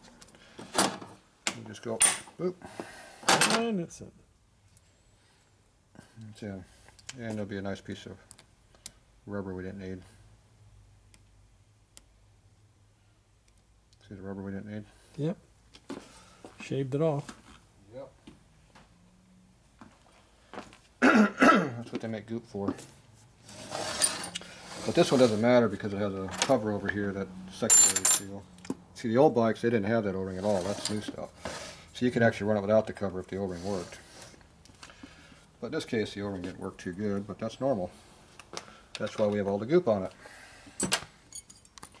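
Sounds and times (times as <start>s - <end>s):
man clearing his throat: 21.0s - 21.8s.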